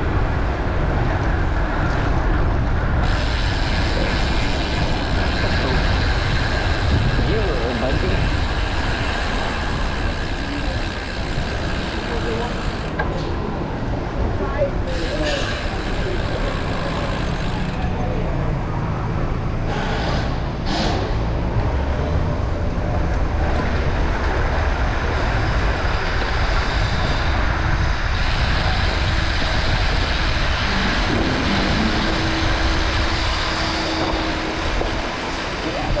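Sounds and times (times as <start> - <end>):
bike tyres rumbling over cobblestones: 0.0 - 36.0
street traffic: 0.0 - 36.0
wind rushing over microphone: 0.0 - 36.0.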